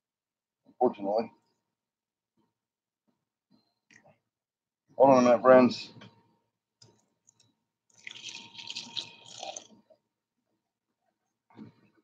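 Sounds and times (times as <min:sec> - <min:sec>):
water pouring into plastic dish: 0:07.3 - 0:09.9.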